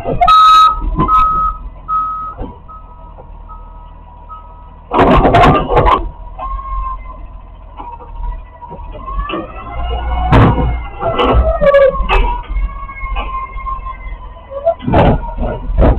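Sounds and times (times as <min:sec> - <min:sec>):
truck engine running: 0:00.0 - 0:15.9
warning beeps: 0:00.2 - 0:04.7.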